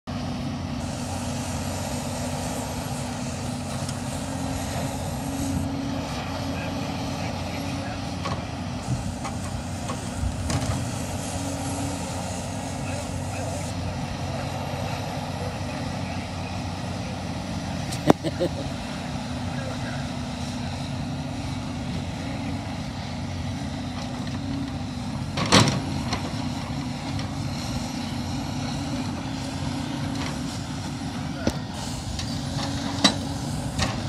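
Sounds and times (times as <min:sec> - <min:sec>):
diesel engine running: 0:00.0 - 0:34.0.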